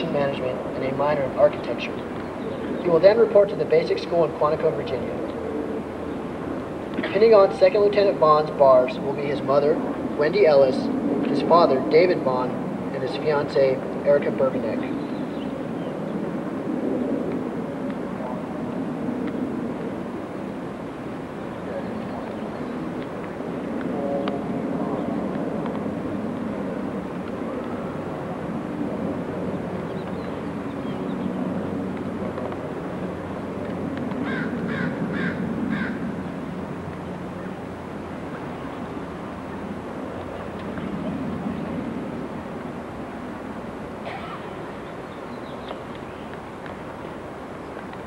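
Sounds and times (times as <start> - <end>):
low outdoor rumble: 0.0 - 48.0
bird harsh calls: 34.2 - 36.0.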